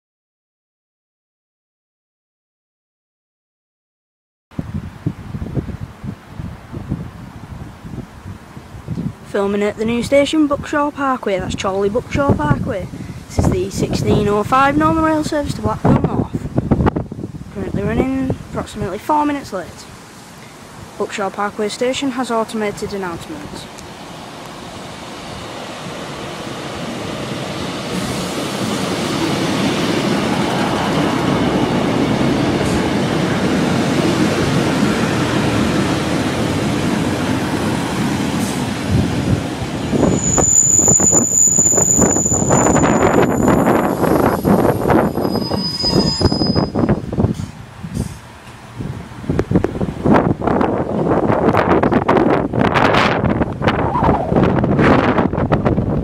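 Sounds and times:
wind buffeting microphone: 0:04.6 - 0:48.1, 0:48.7 - 0:56.0
diesel train approaching: 0:19.4 - 0:56.0
train brakes squealing: 0:39.9 - 0:48.2.

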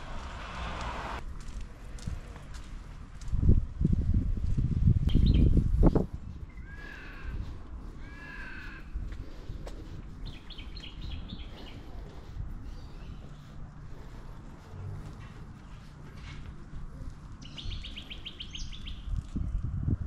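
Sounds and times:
birds calling: 0:06.5 - 0:16.3, 0:16.9 - 0:19.2.

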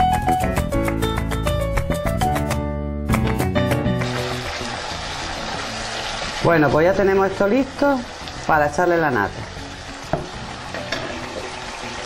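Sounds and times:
background music: 0:00.0 - 0:12.0
mushrooms sizzling in a frying pan: 0:04.0 - 0:12.0.

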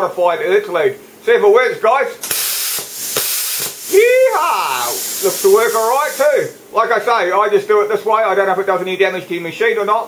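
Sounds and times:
plasma cutter hiss: 0:02.2 - 0:06.6.

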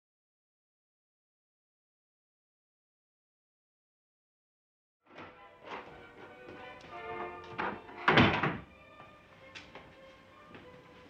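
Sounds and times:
background music with sustained tones: 0:05.1 - 0:11.0
wooden door shutting with a thud: 0:07.6 - 0:08.7.

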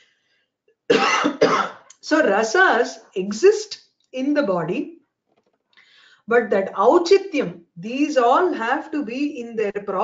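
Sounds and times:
woman coughing: 0:00.9 - 0:01.9.

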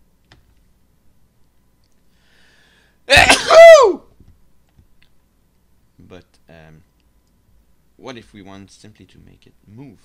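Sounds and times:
person sneezing: 0:03.1 - 0:04.0.

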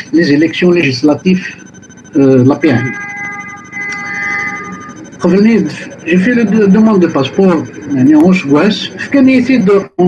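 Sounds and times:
held multi-pitch tone: 0:00.0 - 0:10.0.

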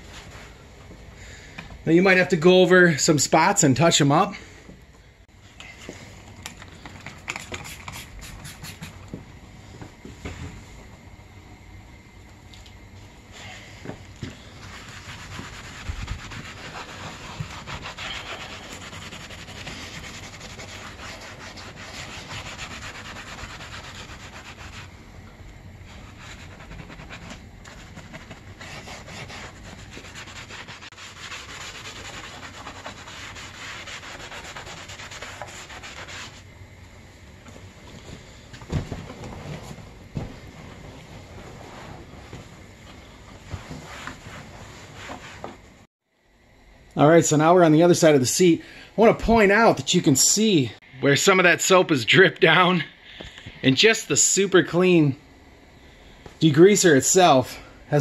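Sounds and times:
brush scrubbing wet seat cover: 0:14.6 - 0:24.9, 0:25.9 - 0:36.4.

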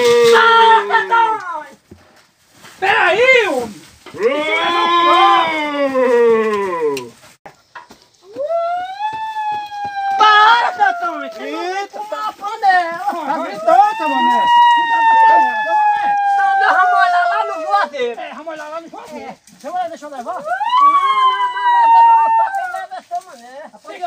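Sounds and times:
man hollering high-pitched calls: 0:08.4 - 0:11.7, 0:13.4 - 0:17.9, 0:20.4 - 0:22.8.

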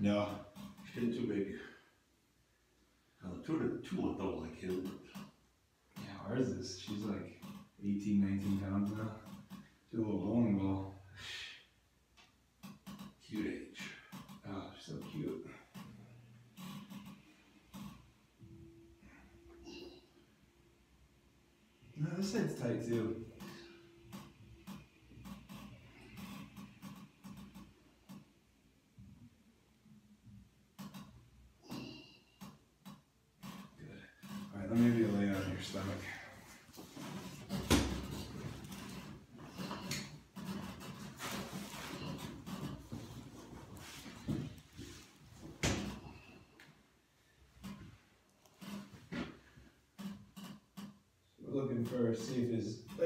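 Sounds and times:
light clicks and creaks: 0:00.2 - 0:01.2, 0:04.5 - 0:09.9, 0:12.1 - 0:18.6, 0:22.3 - 0:28.4, 0:30.2 - 0:46.8, 0:47.6 - 0:53.0
faint rustling of clothing: 0:33.5 - 0:49.9.

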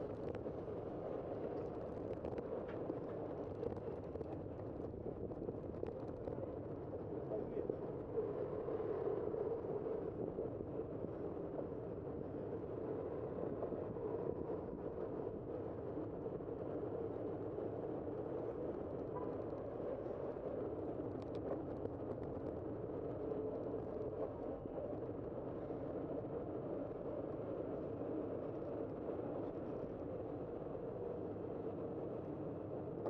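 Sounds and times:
wind and tyre noise: 0:00.0 - 0:33.0
faint ticks: 0:21.1 - 0:22.6.

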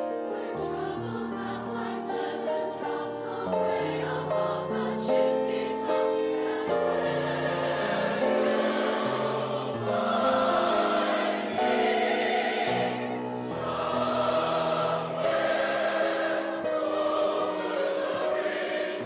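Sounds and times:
choir singing chords: 0:00.0 - 0:19.0.

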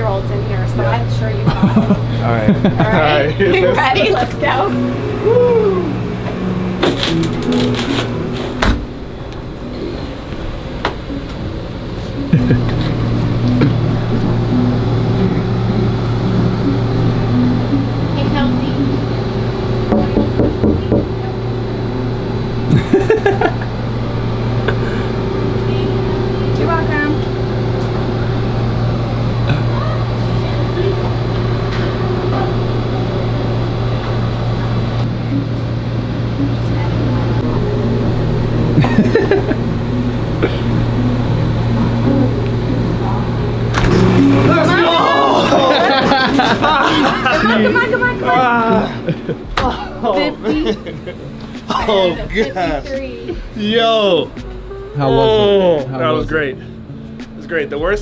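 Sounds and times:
refrigeration hum: 0:00.0 - 0:58.0
music: 0:03.1 - 0:23.6, 0:29.6 - 0:58.0
muffled voices: 0:42.0 - 0:58.0.

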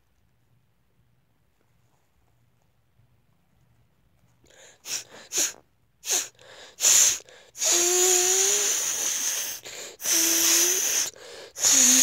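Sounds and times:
child hissing breath through teeth: 0:04.5 - 0:12.0.

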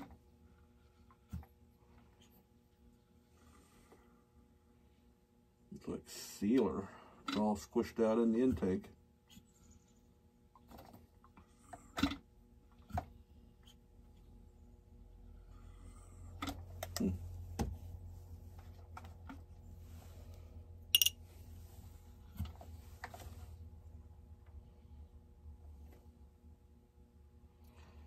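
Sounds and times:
low steady hum: 0:00.0 - 0:28.0.

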